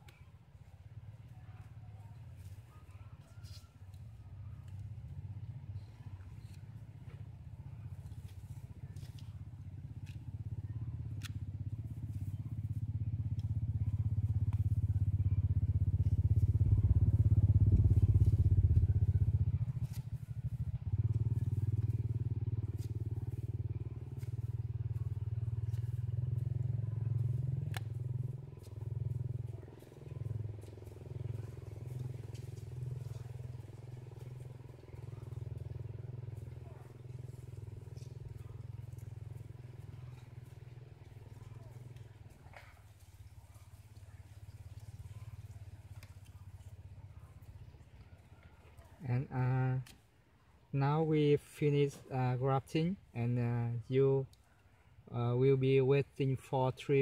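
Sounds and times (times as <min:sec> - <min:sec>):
engine running with low hum: 0:00.0 - 0:57.0.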